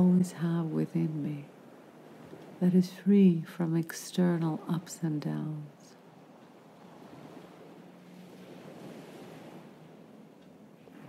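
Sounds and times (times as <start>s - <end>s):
sea waves washing onto shore: 0.0s - 3.1s, 3.9s - 11.0s.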